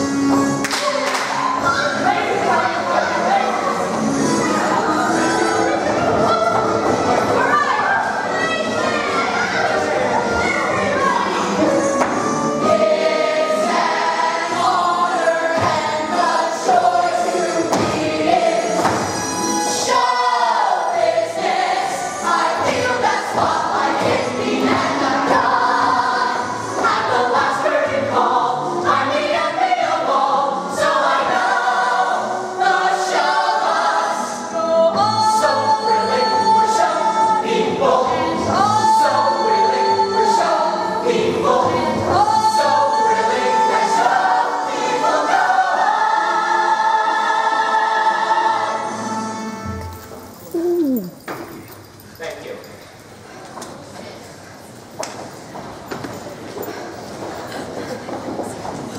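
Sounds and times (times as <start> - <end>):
mixed ensemble singing: 0.0 - 49.8.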